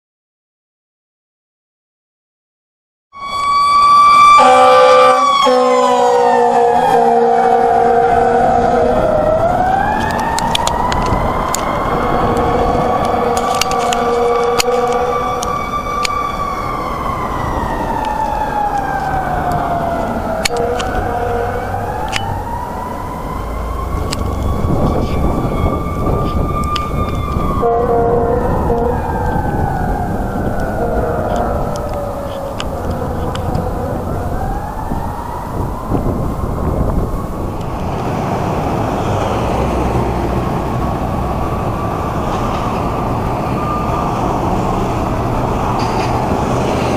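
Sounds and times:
fire engine siren wailing: 0:03.1 - 0:46.9
horn blasts: 0:04.3 - 0:09.1, 0:11.9 - 0:15.6, 0:20.4 - 0:21.9, 0:27.6 - 0:29.1, 0:30.6 - 0:31.8.

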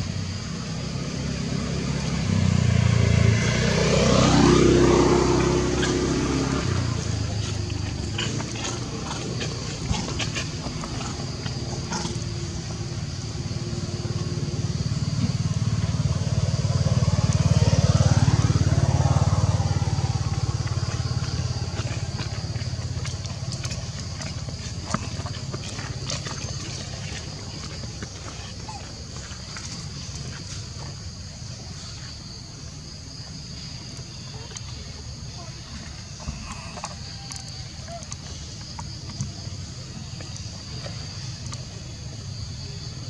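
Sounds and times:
vehicle engine passing: 0:00.0 - 0:37.6.

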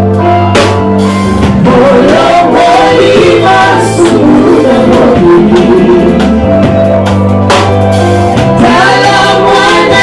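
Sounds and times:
drum kit: 0:00.0 - 0:10.0
gospel band playing: 0:00.0 - 0:10.0
low bass notes: 0:00.0 - 0:10.0.

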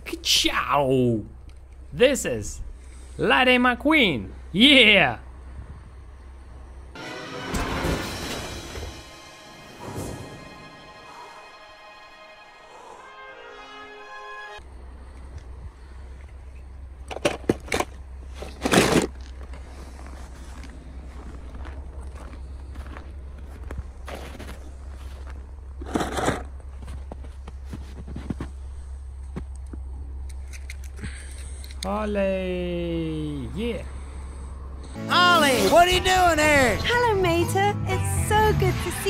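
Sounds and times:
low wind rumble on microphone: 0:05.4 - 0:06.2
film music: 0:06.9 - 0:15.4, 0:33.4 - 0:39.0
crunches in snow: 0:18.2 - 0:29.5.

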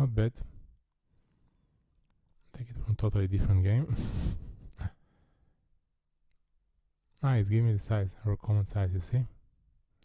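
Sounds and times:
man speaking: 0:00.0 - 0:00.5, 0:07.2 - 0:09.4.

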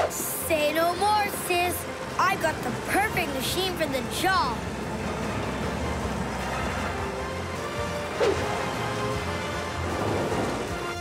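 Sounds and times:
background music: 0:00.0 - 0:11.0
bulldozer engine and tracks rumbling: 0:00.0 - 0:11.0.

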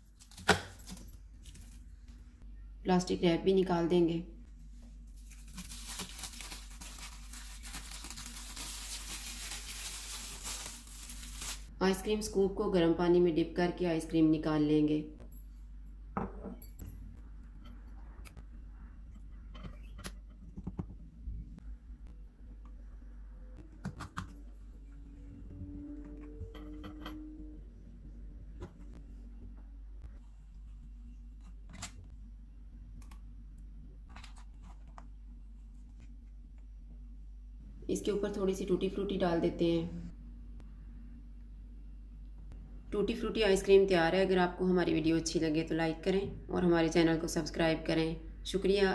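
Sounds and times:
low steady hum: 0:00.0 - 0:48.9
plastic wrap crinkling: 0:05.1 - 0:11.7.

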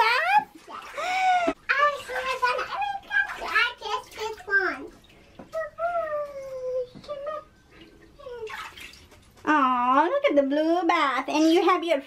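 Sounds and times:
bathwater sloshing: 0:00.0 - 0:11.8
water splash: 0:00.6 - 0:05.4, 0:07.8 - 0:09.6
child's wordless voice: 0:01.7 - 0:07.6, 0:08.2 - 0:08.6.

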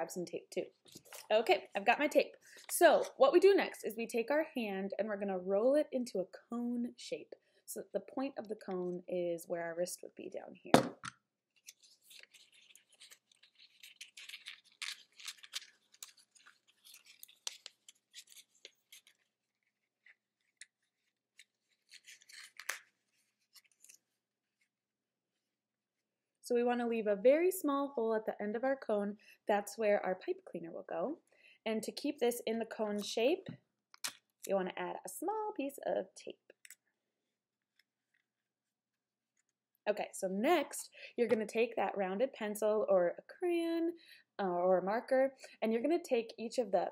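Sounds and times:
paper rustling and crinkling: 0:11.6 - 0:24.7.

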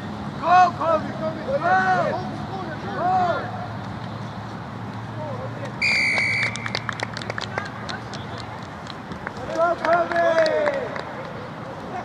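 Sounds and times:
referee's whistle blast: 0:05.8 - 0:06.7.

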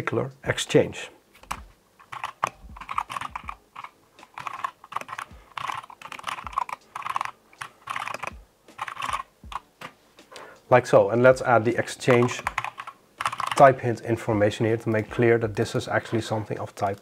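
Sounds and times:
typing on computer keyboard: 0:01.4 - 0:09.6, 0:12.1 - 0:13.8.

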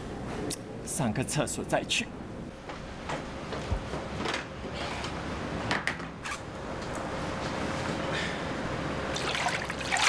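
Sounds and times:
zipper: 0:06.2 - 0:06.5.

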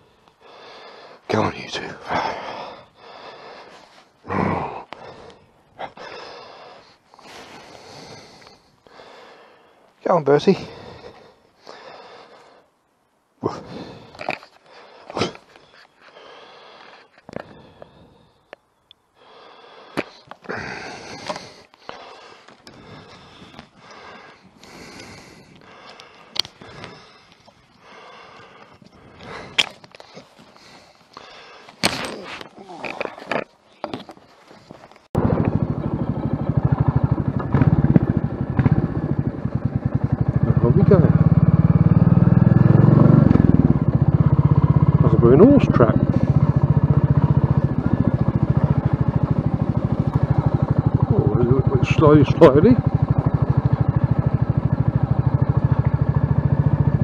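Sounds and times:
motorcycle engine running: 0:35.2 - 0:57.0.

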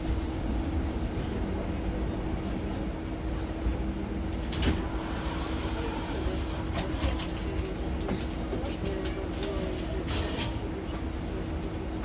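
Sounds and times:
bus cabin hum with constant tone: 0:00.0 - 0:12.0.

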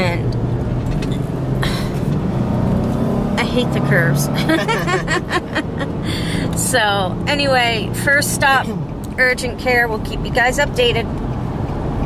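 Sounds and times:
car engine and road hum: 0:00.0 - 0:12.0.

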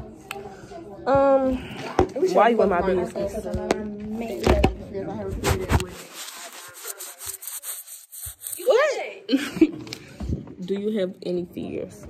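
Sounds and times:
microphone rubbing on fabric: 0:05.2 - 0:08.6.

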